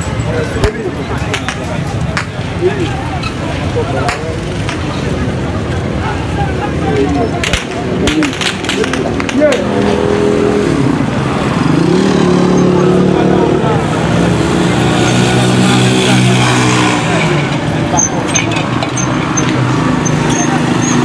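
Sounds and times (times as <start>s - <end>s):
people's voices: 0.0s - 21.0s
engine revving: 9.3s - 17.8s.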